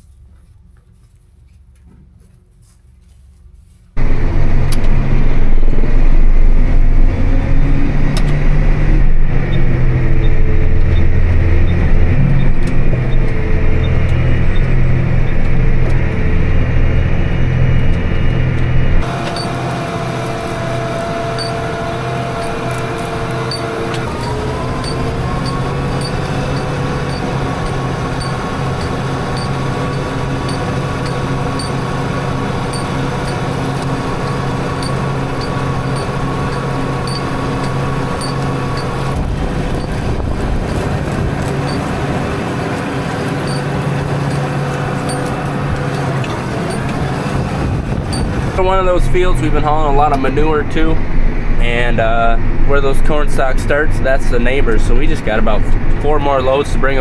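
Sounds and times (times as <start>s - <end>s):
tractor and manure spreader droning: 0.0s - 57.0s
loud engine rumble: 3.5s - 57.0s.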